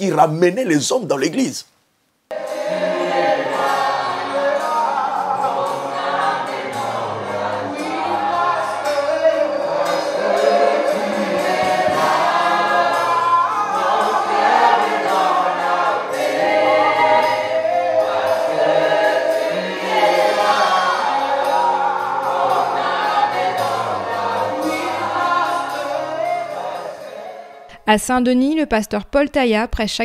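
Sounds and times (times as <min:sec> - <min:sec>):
women singing gospel: 0:02.3 - 0:27.7.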